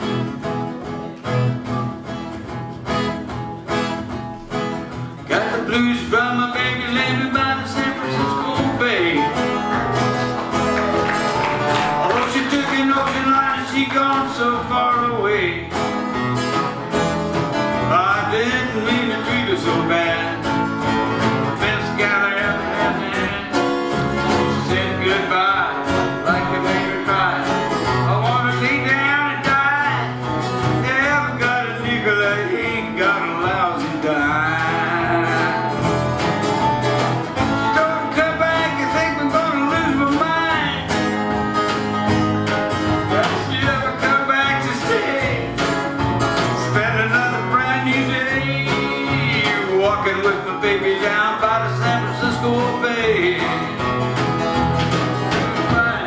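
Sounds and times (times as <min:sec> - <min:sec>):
acoustic guitars strummed and picked: 0:00.0 - 0:56.0.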